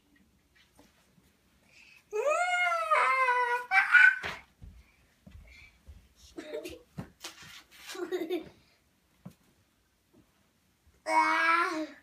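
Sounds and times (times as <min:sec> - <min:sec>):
child squealing: 0:02.2 - 0:04.4.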